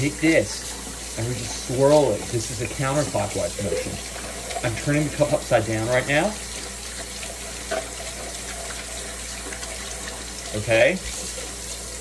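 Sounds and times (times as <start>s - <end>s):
faucet running into sink: 0.0s - 12.0s
water splashing in metal cup: 0.0s - 12.0s.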